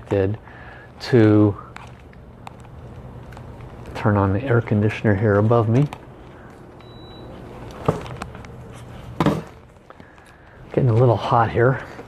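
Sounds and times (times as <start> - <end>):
air conditioner humming: 0.0 - 12.0
short high beep: 6.8 - 7.4.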